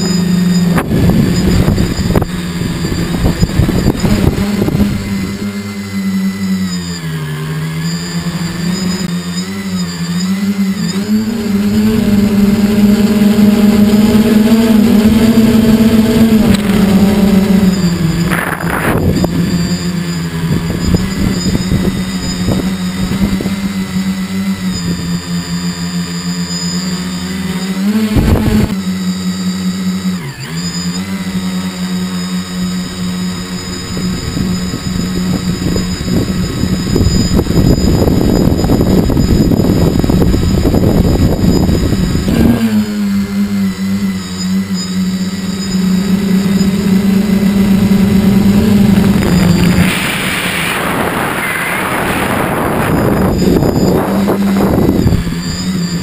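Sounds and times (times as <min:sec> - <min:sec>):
wind on microphone: 0:00.0 - 0:06.1, 0:11.6 - 0:25.2, 0:28.0 - 0:28.8, 0:33.2 - 0:42.8, 0:46.0 - 0:56.0
propellers humming: 0:00.0 - 0:56.0.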